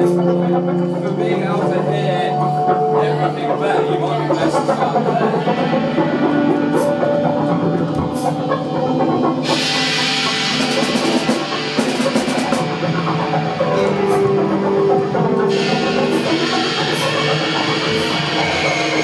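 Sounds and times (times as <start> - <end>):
rock band playing: 0.1 - 19.0
cymbal washes: 4.8 - 19.0.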